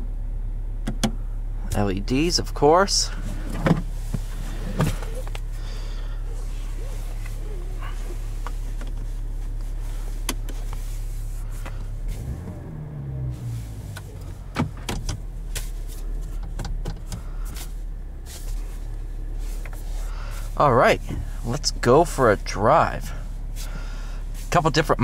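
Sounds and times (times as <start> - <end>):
diesel engine idling: 0.0 - 25.0.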